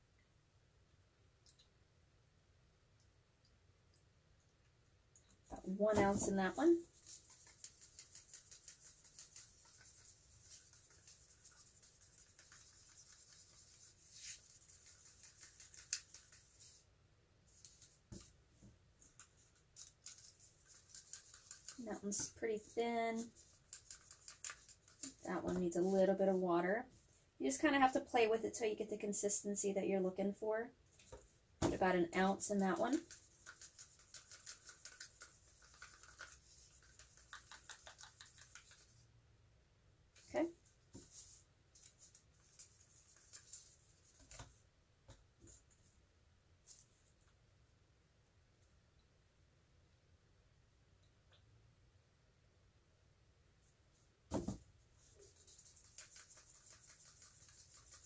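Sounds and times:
stick stirring paint in cup: 5.2 - 16.9, 19.0 - 26.4, 31.0 - 39.1, 40.2 - 44.5, 55.0 - 58.0.

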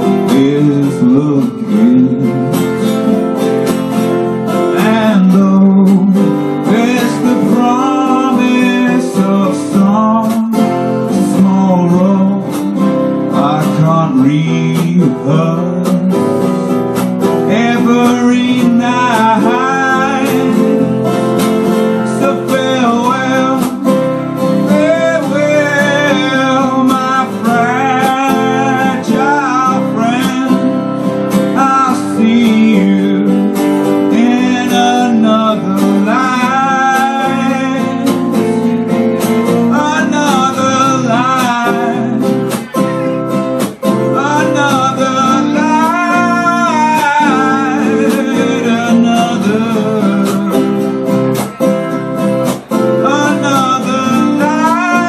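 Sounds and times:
acoustic guitars playing: 0.0 - 55.0
man singing: 0.0 - 55.0.

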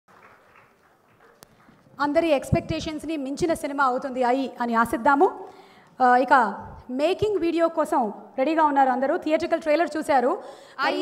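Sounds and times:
faint audience applause: 0.1 - 2.0.

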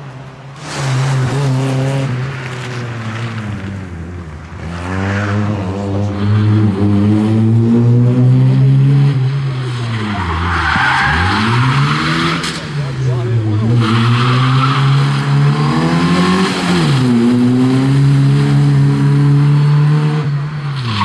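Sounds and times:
rally car engine revving: 0.6 - 21.0
tyres squealing on tarmac: 9.8 - 15.2.

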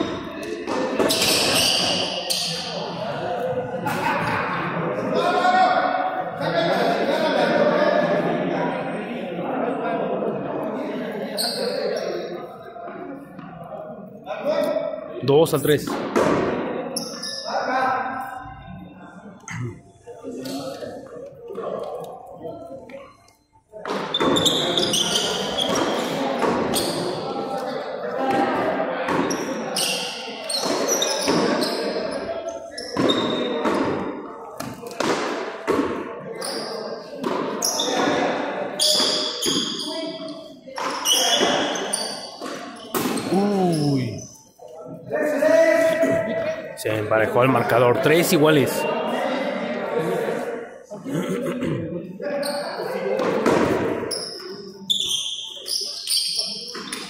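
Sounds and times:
players calling out: 42.8 - 44.5.

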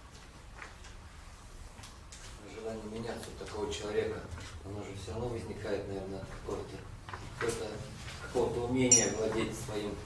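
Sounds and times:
man speaking: 2.6 - 10.0.

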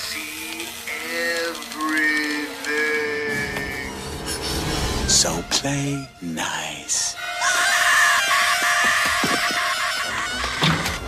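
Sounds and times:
boy screaming: 7.3 - 10.6.

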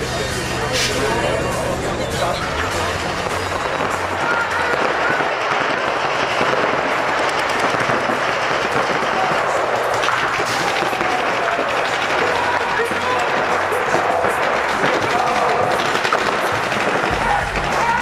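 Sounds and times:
paintball markers firing: 3.3 - 18.0.

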